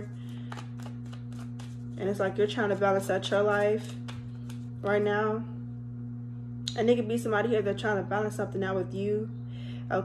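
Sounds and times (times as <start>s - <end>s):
cards being shuffled by hand: 0.0s - 5.0s
steady low hum: 0.0s - 10.0s.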